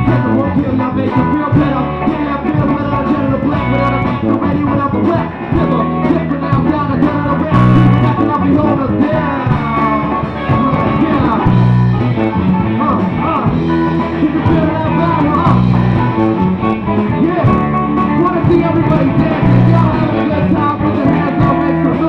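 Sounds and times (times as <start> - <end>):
live band playing: 0.0 - 22.0
person singing through pa: 0.0 - 22.0.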